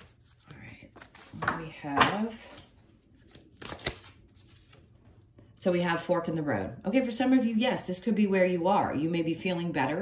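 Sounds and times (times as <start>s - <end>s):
cards clicking and sliding: 3.2s - 4.8s.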